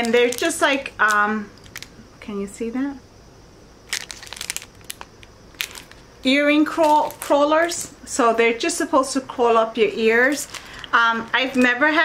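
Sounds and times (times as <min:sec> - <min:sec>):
plastic packaging crinkling: 0:00.0 - 0:01.9, 0:03.8 - 0:07.9, 0:10.2 - 0:11.8.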